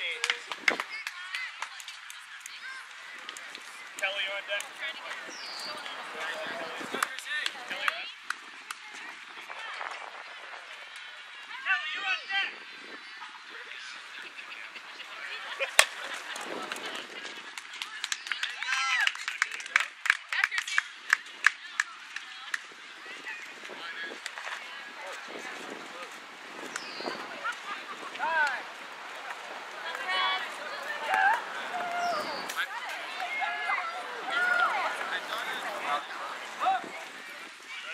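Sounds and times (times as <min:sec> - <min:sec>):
short sharp claps: 0:00.0 - 0:05.2, 0:06.9 - 0:08.9, 0:15.8 - 0:22.7, 0:29.2 - 0:33.4
people calling out: 0:27.0 - 0:37.9
people shouting: 0:29.8 - 0:37.0.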